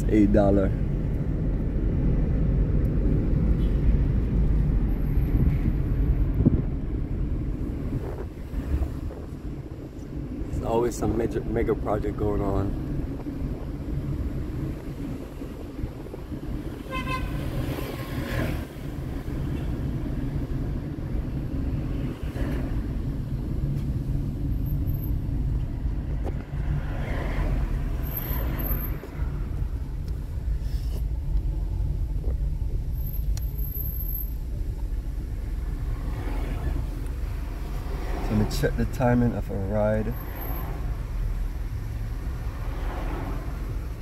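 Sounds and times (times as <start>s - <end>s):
car engine and road rumble: 0.0s - 44.0s
car horn toot: 16.8s - 18.2s.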